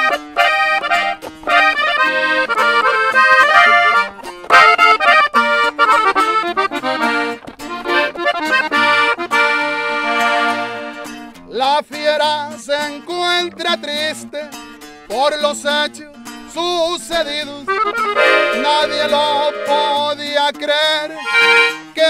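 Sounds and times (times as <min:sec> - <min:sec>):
button accordion melody: 0:00.0 - 0:11.3, 0:17.6 - 0:20.4, 0:21.0 - 0:22.0
acoustic guitar strumming: 0:00.0 - 0:22.0.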